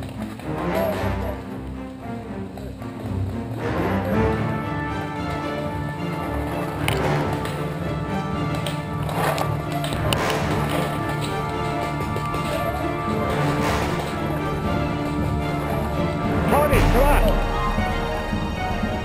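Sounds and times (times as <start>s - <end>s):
background music held notes: 0.0s - 19.0s.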